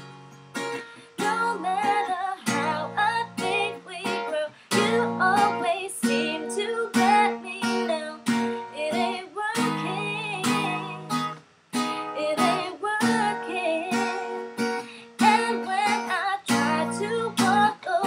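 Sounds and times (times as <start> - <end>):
strummed acoustic guitar: 0.0 - 18.0
woman singing: 1.0 - 18.0.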